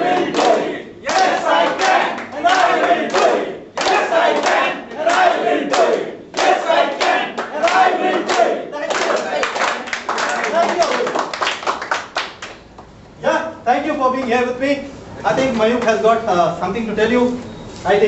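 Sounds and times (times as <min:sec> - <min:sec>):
group chanting in unison: 0:00.0 - 0:09.9
people clapping and cheering: 0:00.0 - 0:12.8.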